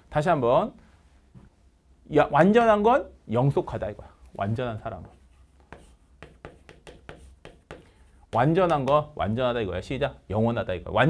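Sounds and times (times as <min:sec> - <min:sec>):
chalk writing on chalkboard: 0:04.9 - 0:09.1.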